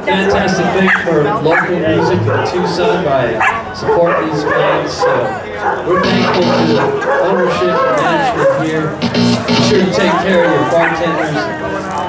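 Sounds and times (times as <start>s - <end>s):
people talking and chattering: 0.0s - 12.0s.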